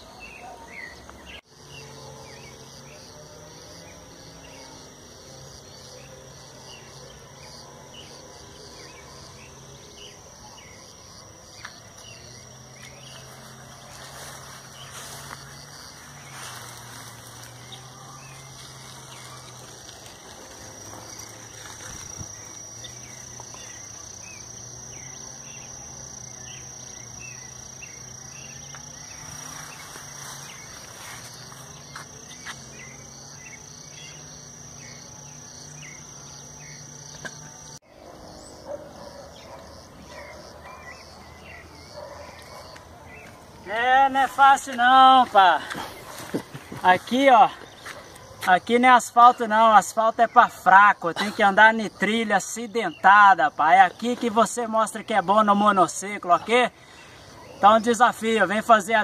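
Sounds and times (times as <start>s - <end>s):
high-pitched insect call: 0.0s - 59.0s.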